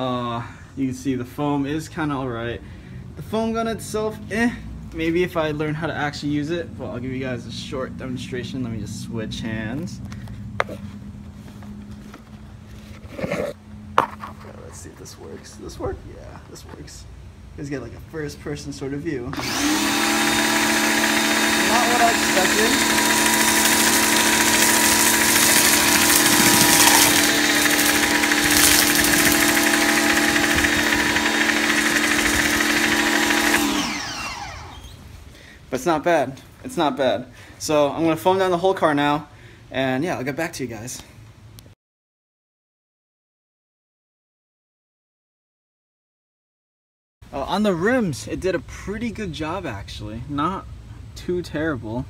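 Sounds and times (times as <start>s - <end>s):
pressure washer humming: 19.3s - 35.0s.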